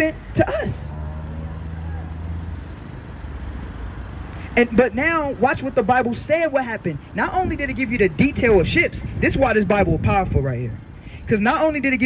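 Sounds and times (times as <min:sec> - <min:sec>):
traffic noise: 0:00.0 - 0:12.0
vehicle engine humming: 0:00.0 - 0:12.0.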